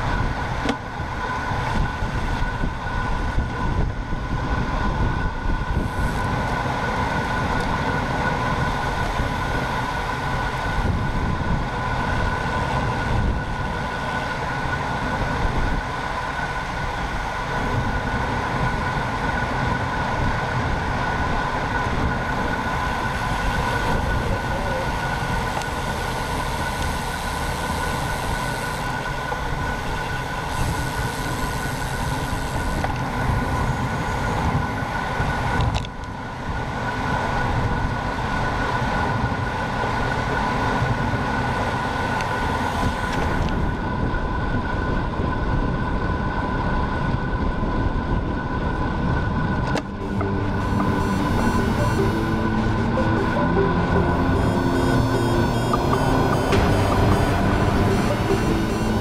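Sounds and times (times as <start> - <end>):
steady high whine: 0.0 - 46.5, 47.1 - 59.0
wind rushing over camera: 0.0 - 52.0
road noise: 0.0 - 59.0.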